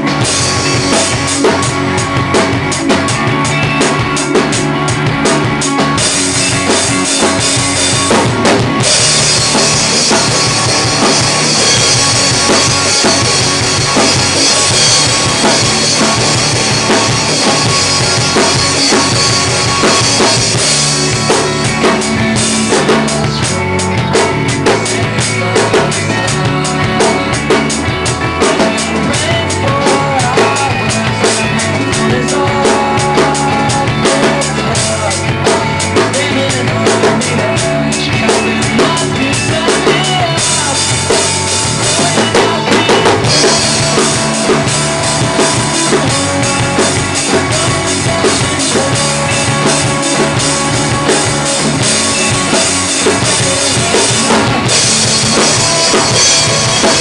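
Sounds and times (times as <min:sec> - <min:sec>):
drum kit playing: 0:00.0 - 0:57.0
recorded rock song: 0:00.0 - 0:57.0.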